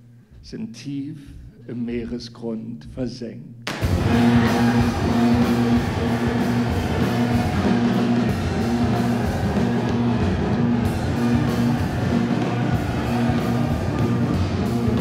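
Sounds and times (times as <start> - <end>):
loud rock music: 3.7 - 15.0.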